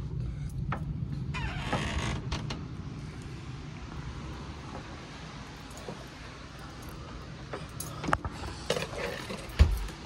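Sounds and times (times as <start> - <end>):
creak with falling squeal: 1.3 - 2.6.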